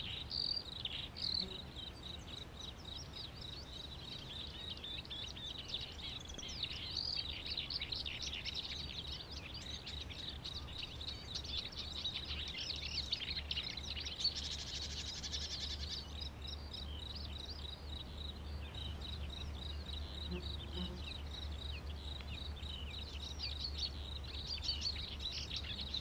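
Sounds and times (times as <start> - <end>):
birds chirping in chorus: 0.0 - 26.0.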